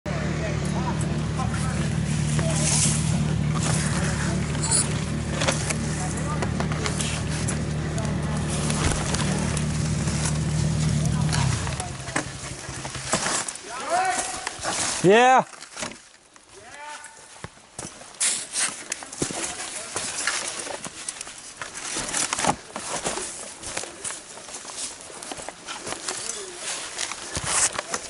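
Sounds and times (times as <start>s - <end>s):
dirt bike engine idling: 0.1s - 13.4s
knocks and scrapes of handling: 2.0s - 16.1s, 17.4s - 28.0s.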